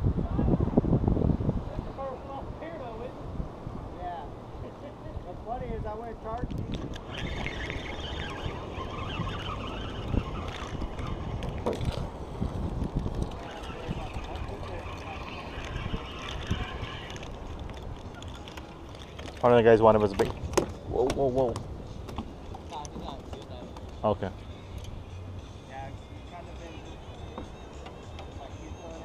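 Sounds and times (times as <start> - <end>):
wind buffeting microphone: 0.0 - 24.0
faint voices: 13.3 - 20.0.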